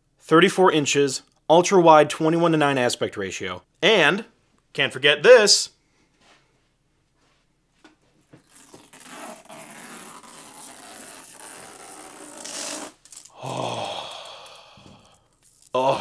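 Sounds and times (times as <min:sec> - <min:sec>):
plastic film peeling off: 0:08.4 - 0:13.4, 0:15.2 - 0:15.8.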